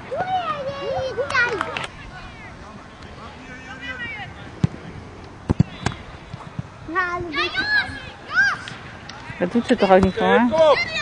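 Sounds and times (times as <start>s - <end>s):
distant children shouting: 0.0s - 2.6s, 6.9s - 8.9s, 10.5s - 11.0s.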